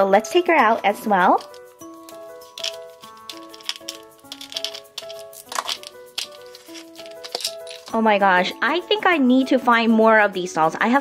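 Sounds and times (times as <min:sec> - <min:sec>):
background music melody: 0:00.0 - 0:11.0
plastic bottle clicks and crinkles: 0:01.4 - 0:08.0.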